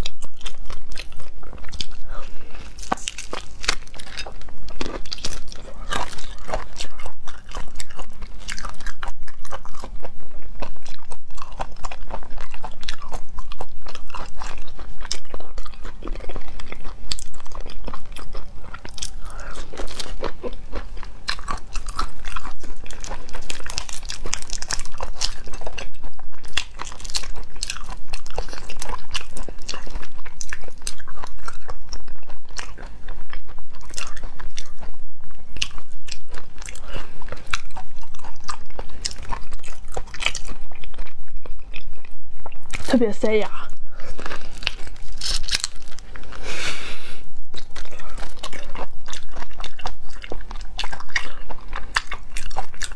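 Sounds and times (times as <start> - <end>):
wet chewing and crunching: 0.0 - 52.9
prawn shells crackling when peeled: 44.0 - 46.6.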